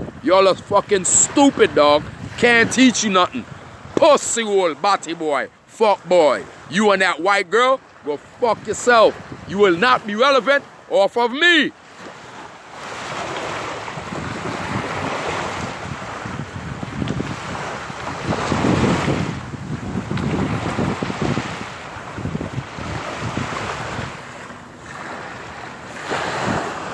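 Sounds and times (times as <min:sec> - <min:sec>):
wind noise on microphone: 0:00.0 - 0:04.5, 0:08.2 - 0:10.1, 0:12.0 - 0:26.9
small waves breaking on shore: 0:00.0 - 0:26.9.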